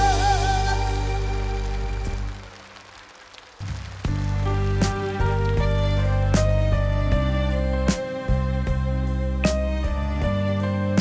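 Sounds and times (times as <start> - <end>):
live band playing: 0.0 - 2.5, 4.0 - 11.0
piano: 0.0 - 11.0
low bass notes: 3.8 - 11.0.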